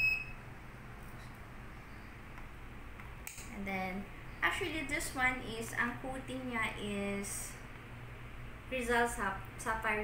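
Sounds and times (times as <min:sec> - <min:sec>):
high-pitched beep: 0:00.0 - 0:00.4
low electrical hum: 0:00.0 - 0:10.0.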